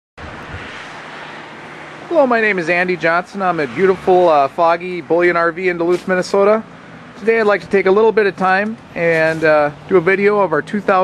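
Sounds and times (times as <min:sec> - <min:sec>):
outdoor background hiss: 0:00.4 - 0:11.0.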